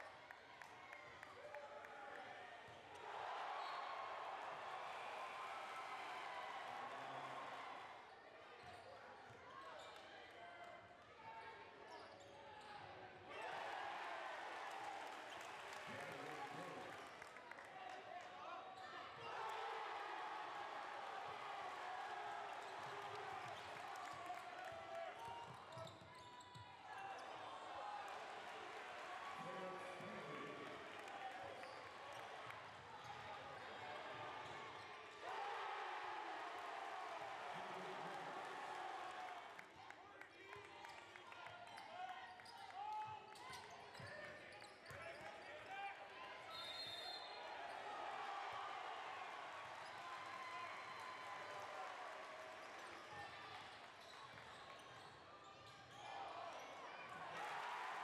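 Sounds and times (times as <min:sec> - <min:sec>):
crowd voices and shouts: 0:00.0 - 0:53.9.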